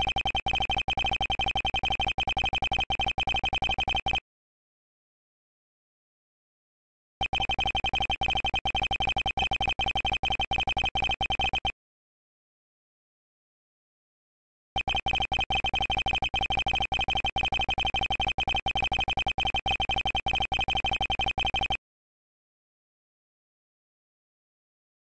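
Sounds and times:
short electronic text beeps: 7.2s - 11.7s.

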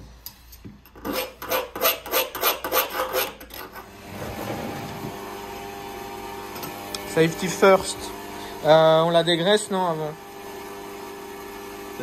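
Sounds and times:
file rasping on metal: 0.9s - 3.9s.

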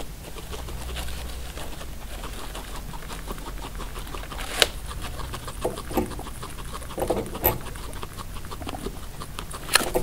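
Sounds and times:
guinea pig chewing hay: 0.0s - 10.0s.

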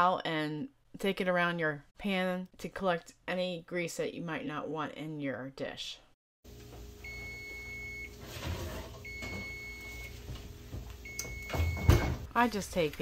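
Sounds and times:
oven timer beeping: 7.0s - 8.2s, 9.0s - 10.2s, 10.9s - 12.1s.

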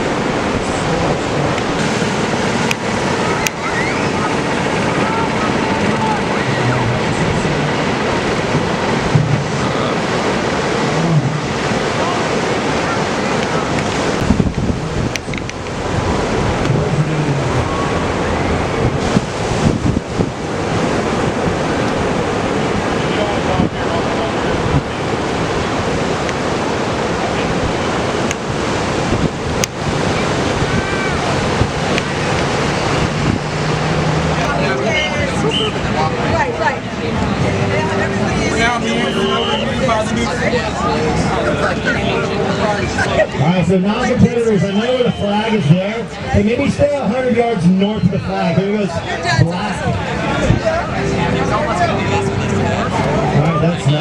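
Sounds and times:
wind buffeting microphone: 0.0s - 45.2s, 46.0s - 54.0s
ocean surf breaking: 0.0s - 54.0s.

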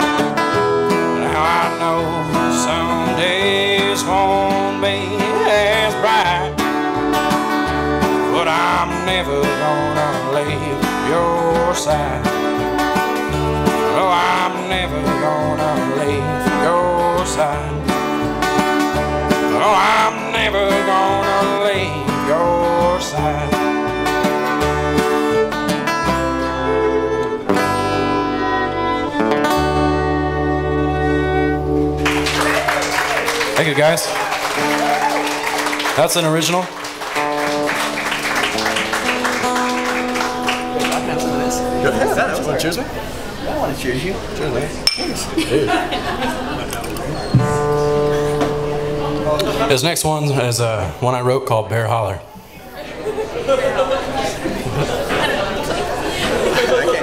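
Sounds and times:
strummed acoustic guitar: 0.0s - 32.4s, 33.5s - 43.4s, 47.2s - 52.6s
fiddle: 0.0s - 35.7s
upright bass: 0.0s - 52.3s.

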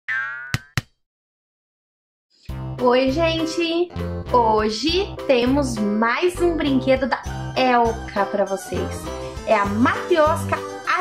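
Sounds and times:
cartoon boing: 0.1s - 0.8s.

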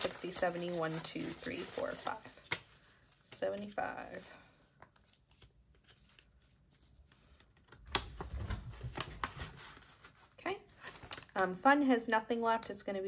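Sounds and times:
banknotes rustling: 0.0s - 4.2s.

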